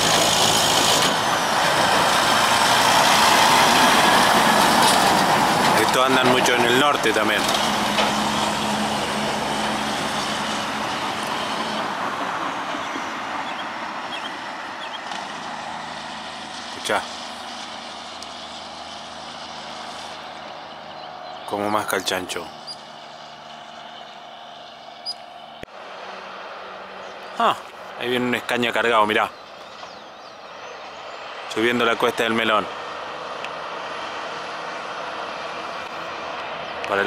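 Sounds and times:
distant truck engine drone: 0:00.0 - 0:37.0.

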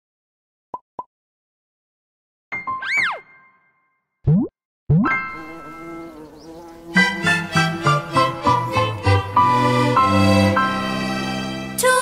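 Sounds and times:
cartoon pitch glide: 0:02.8 - 0:03.4, 0:04.3 - 0:06.4.

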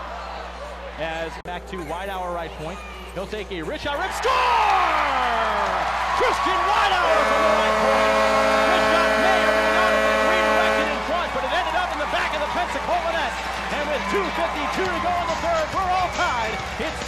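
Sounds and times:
crowd cheering: 0:00.0 - 0:01.2, 0:03.8 - 0:17.0
goal horn blast: 0:06.8 - 0:11.6.

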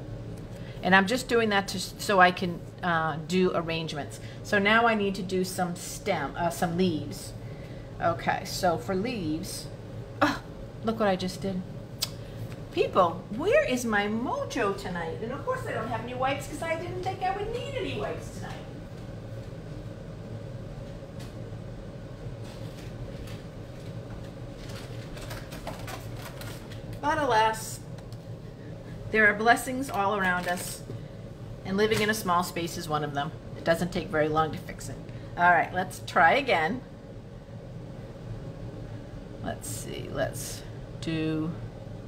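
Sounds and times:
low room hum: 0:00.0 - 0:42.0.

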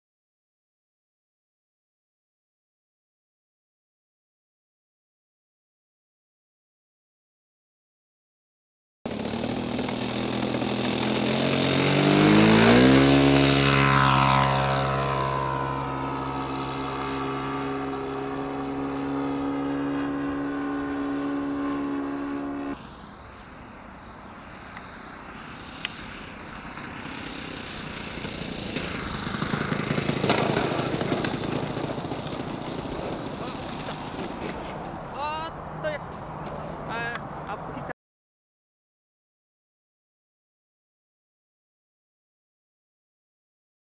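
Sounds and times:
model plane engine and propeller: 0:09.1 - 0:35.4.

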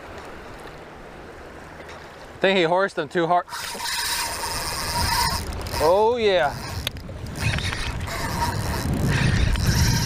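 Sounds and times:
fishing reel spool whirring: 0:03.4 - 0:10.0
wind noise on microphone: 0:03.5 - 0:10.0.

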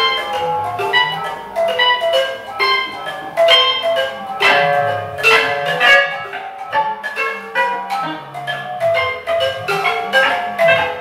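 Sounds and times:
metal bars struck by mallets: 0:00.0 - 0:11.0.

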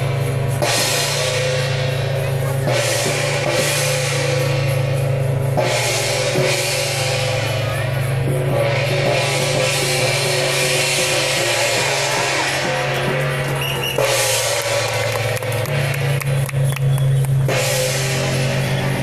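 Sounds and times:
cymbals: 0:00.0 - 0:19.0
steady drum beat: 0:00.0 - 0:19.0.

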